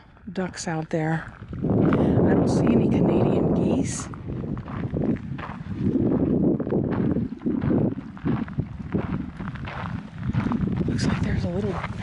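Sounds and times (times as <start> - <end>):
wind buffeting microphone: 0.0 - 12.0
footsteps on gravel: 0.2 - 12.0.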